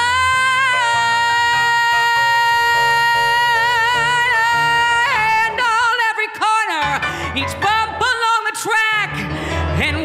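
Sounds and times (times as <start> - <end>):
piano chords: 0.0 - 10.0.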